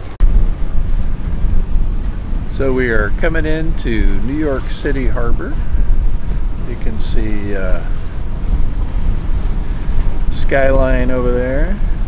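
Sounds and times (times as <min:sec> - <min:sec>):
waves washing: 0:00.0 - 0:12.0
wind buffeting microphone: 0:00.0 - 0:12.0.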